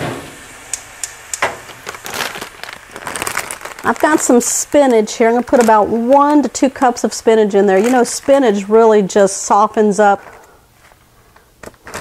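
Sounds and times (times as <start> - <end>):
plastic bag crinkling: 1.4 - 9.4, 11.6 - 12.0.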